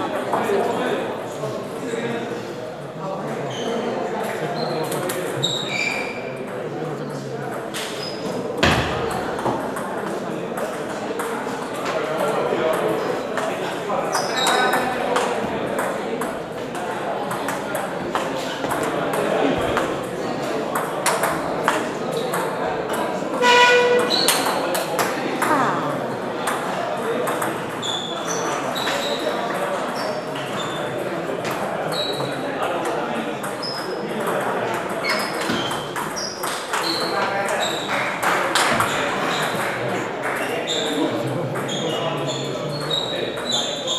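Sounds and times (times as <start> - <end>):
hum of voices: 6.2 - 43.9
table tennis balls clicking: 26.5 - 27.8.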